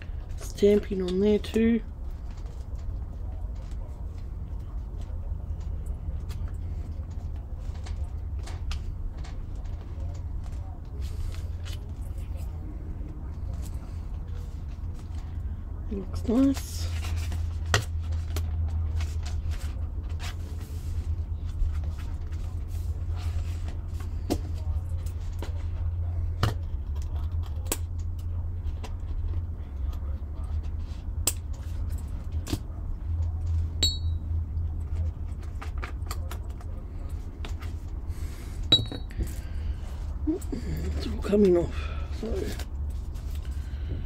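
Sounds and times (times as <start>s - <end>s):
steady low hum: 0.0s - 44.0s
small metallic clink: 33.8s - 34.2s.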